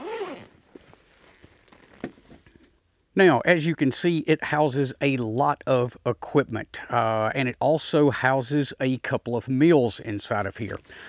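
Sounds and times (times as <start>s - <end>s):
backpack being unzipped: 0.0s - 0.6s
backpack fabric rustling: 0.0s - 2.3s.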